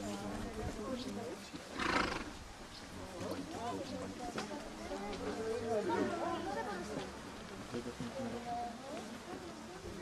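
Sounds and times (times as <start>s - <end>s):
faint voices: 0.0s - 10.0s
horse snorting: 1.8s - 2.4s.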